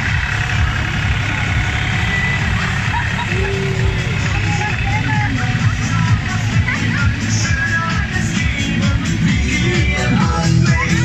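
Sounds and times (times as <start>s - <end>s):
crowd chatter: 0.0s - 11.0s
engine running steadily: 0.0s - 11.0s
music: 0.0s - 11.0s.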